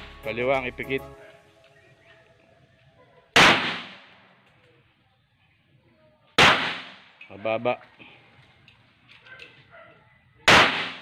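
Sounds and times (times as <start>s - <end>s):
pistol shot with echo: 3.4s - 4.2s, 6.4s - 7.1s, 10.5s - 11.0s.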